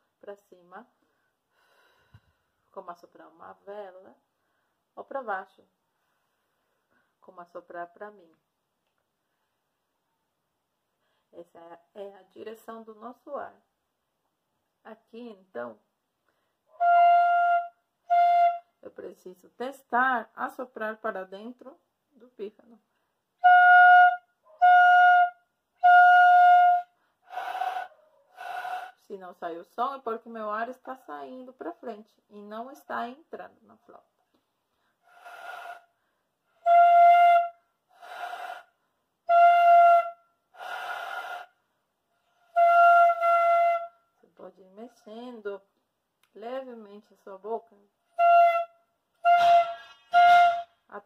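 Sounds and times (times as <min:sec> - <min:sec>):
fife notes with breath noise: 0:26.8 - 0:29.0, 0:34.7 - 0:39.0, 0:40.5 - 0:43.8.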